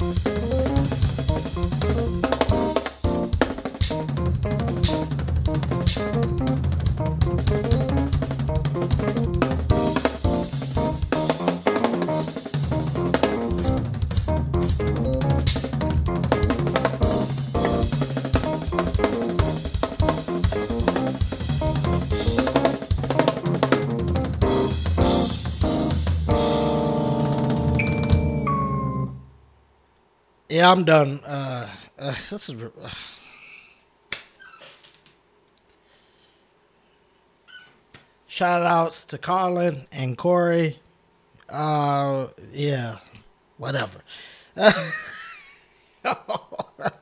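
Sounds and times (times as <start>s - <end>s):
drum kit playing: 0.0s - 29.2s
keyboard chords and bass: 0.0s - 29.5s.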